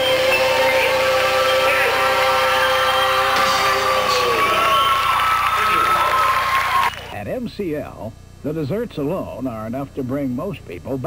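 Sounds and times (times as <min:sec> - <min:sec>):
sustained backing chord: 0:00.0 - 0:05.0.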